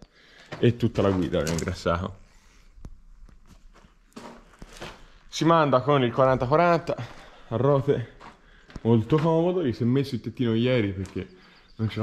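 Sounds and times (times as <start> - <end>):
soft footsteps: 0.5 - 5.4, 6.4 - 9.7.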